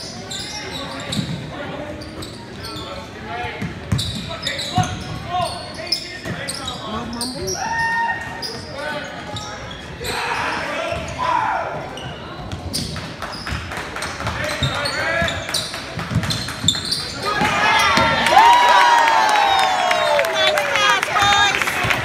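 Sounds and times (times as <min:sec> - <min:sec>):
shoes squeaking: 0:00.0 - 0:03.1, 0:03.9 - 0:11.2, 0:11.9 - 0:18.1
basketball bouncing on floor: 0:16.0 - 0:18.1.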